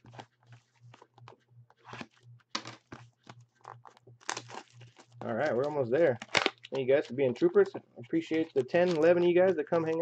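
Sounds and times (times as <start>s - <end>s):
plastic wrap crinkling and tearing: 1.8s - 7.1s, 8.4s - 10.0s.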